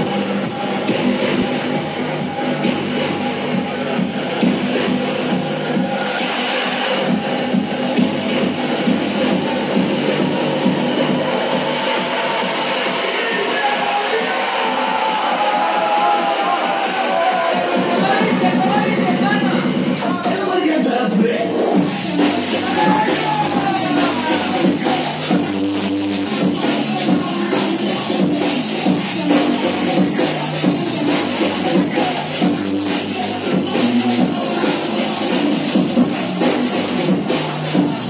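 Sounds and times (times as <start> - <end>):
electronic dance music: 0.0 - 38.0.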